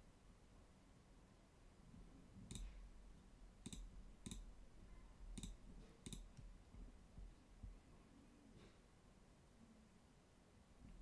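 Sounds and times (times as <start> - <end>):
computer mouse clicks: 2.4 - 2.8, 3.6 - 4.5, 5.3 - 6.5.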